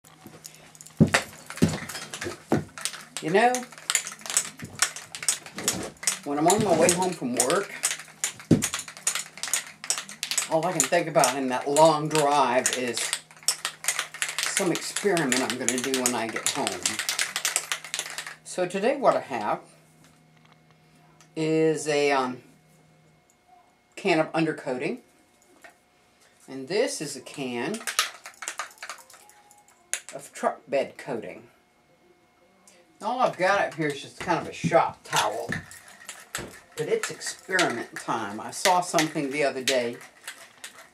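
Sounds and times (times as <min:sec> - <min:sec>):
aerosol can ball rattling: 0:00.4 - 0:18.4, 0:27.7 - 0:29.3, 0:33.4 - 0:40.9.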